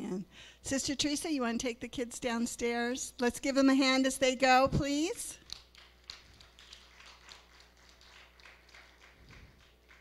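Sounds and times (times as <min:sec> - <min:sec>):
scattered hand claps: 0:05.4 - 0:10.0.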